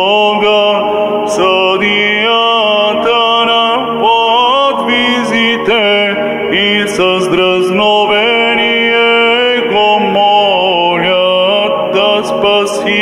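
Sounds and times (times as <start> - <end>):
man chanting into microphone: 0.0 - 13.0.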